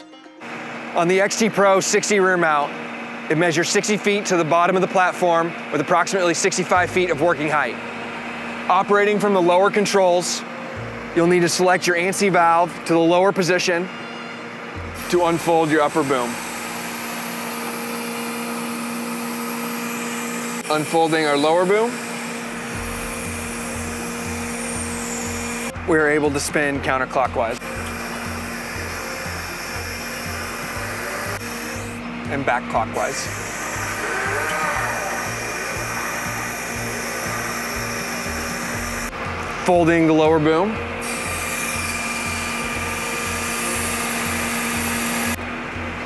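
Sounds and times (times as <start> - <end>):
hydraulic hum and whine: 0.0 - 46.0
hydraulic hiss: 13.7 - 25.8, 27.5 - 32.3, 32.9 - 39.1, 41.0 - 45.4.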